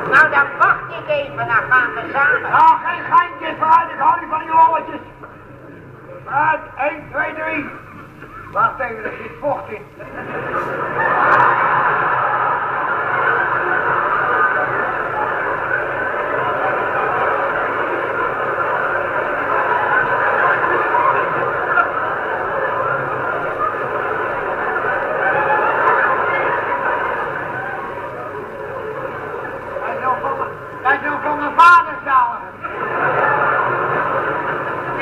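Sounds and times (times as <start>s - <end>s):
audience laughing: 7.8s - 31.3s, 32.5s - 35.0s
audience applauding: 10.2s - 30.5s, 32.6s - 35.0s.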